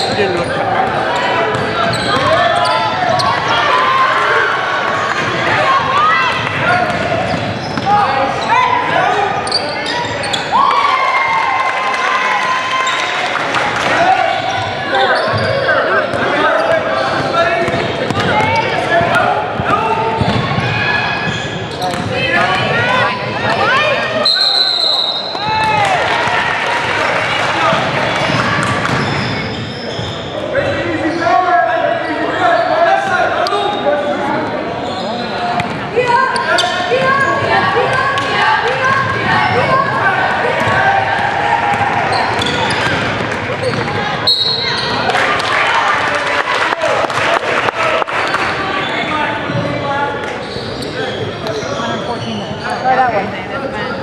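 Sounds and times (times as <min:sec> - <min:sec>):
sneakers squeaking on court: 0:00.0 - 0:03.5, 0:06.3 - 0:08.6, 0:09.4 - 0:10.5, 0:14.5 - 0:22.8, 0:28.3 - 0:31.2, 0:34.8 - 0:37.5, 0:41.7 - 0:45.0, 0:50.4 - 0:53.1
voices chattering: 0:00.0 - 0:10.8, 0:12.7 - 0:54.0
players calling out: 0:00.0 - 0:54.0
basketball bouncing: 0:00.3 - 0:02.4, 0:05.9 - 0:07.9, 0:17.6 - 0:20.7, 0:21.9 - 0:22.8, 0:40.6 - 0:44.0
referee whistle blast: 0:24.2 - 0:25.5, 0:44.2 - 0:44.9.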